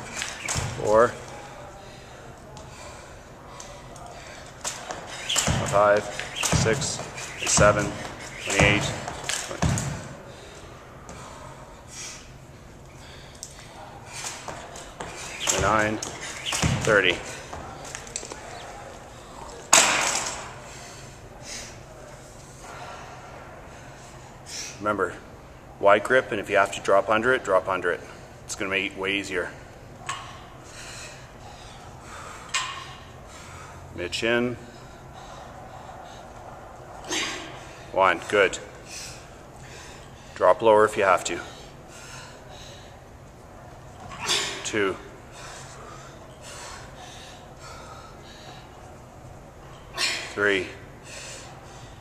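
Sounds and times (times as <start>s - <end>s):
jump rope clattering on wood floor: 4.6s - 10.1s, 14.2s - 18.4s
person breathing hard: 41.4s - 43.1s, 45.3s - 48.8s.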